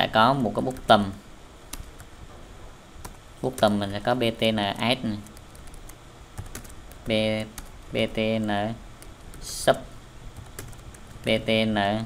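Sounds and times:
computer keyboard keystrokes: 5.2 - 7.8, 10.4 - 11.2.

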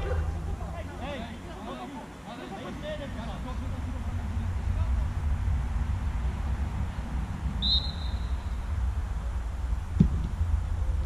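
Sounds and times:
steady low rumble: 0.0 - 1.6, 2.8 - 11.0
referee's whistle blast: 7.6 - 8.5.

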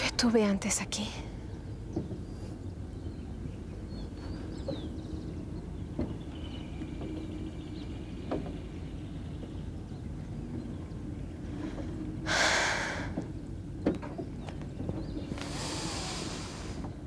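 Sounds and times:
low wind rumble: 0.0 - 17.0.

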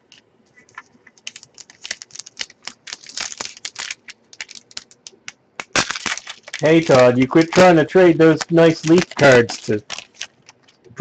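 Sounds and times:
cards being shuffled: 0.0 - 10.8
wrapper crinkling: 0.7 - 10.9.

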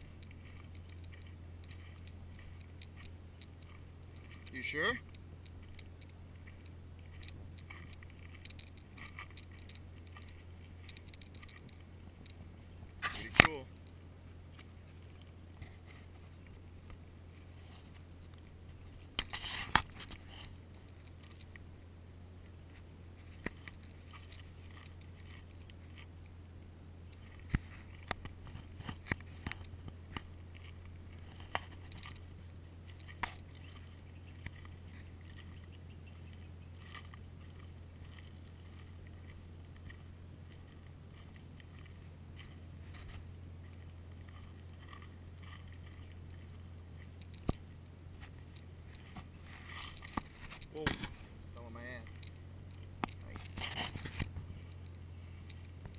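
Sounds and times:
car engine humming: 0.0 - 55.9.

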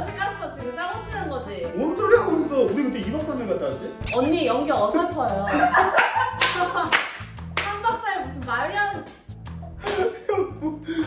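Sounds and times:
music with steady bass beat: 0.2 - 9.8
loud laughter: 5.5 - 6.7
hand claps: 6.0 - 7.9, 9.0 - 10.1.

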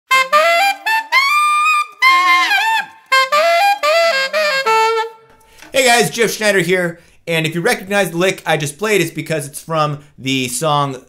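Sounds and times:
alto saxophone playing: 0.1 - 5.3.

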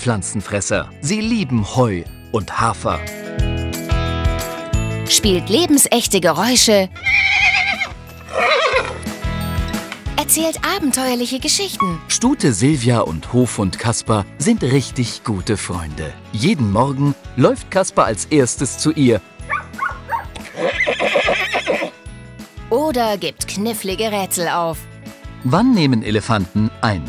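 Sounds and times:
light background music: 0.0 - 27.0
horse whinny: 6.9 - 9.1, 19.5 - 22.0.

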